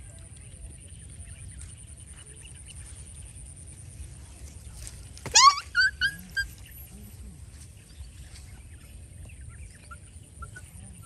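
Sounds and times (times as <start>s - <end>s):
young animal crying: 5.3s - 6.6s
young animal yelping: 5.3s - 6.6s.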